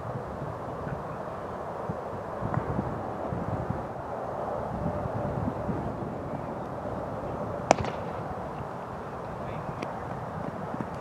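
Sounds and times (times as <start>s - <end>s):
wind noise: 0.0s - 11.0s
cricket bat striking ball: 7.7s - 8.2s.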